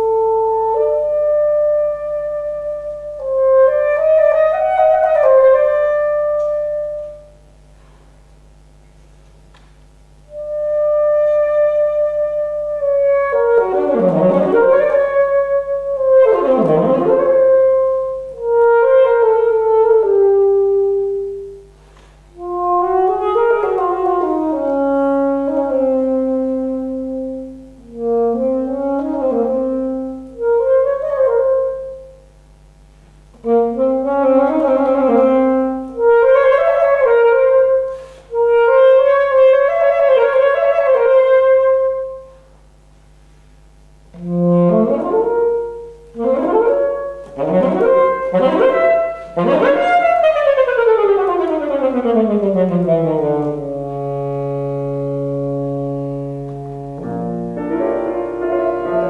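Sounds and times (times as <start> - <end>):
alto saxophone melody: 0.0 - 7.7, 10.0 - 59.0.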